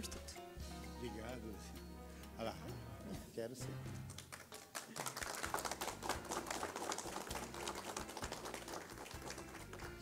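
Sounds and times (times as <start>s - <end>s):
small group applauding: 4.0s - 10.0s.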